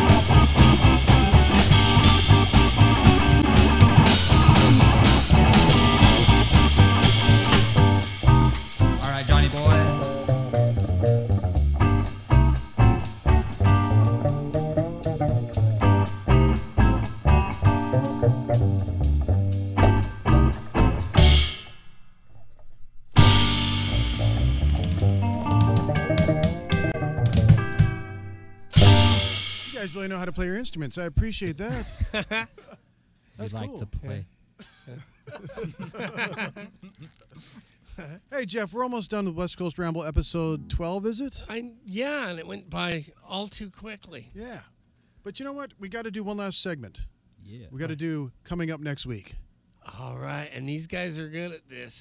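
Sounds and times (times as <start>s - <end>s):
rockabilly band playing live: 0.0s - 21.7s, 23.2s - 30.4s.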